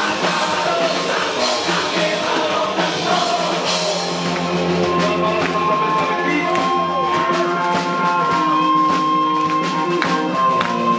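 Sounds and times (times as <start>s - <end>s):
live rock band playing: 0.0s - 10.9s
person singing: 0.0s - 10.9s.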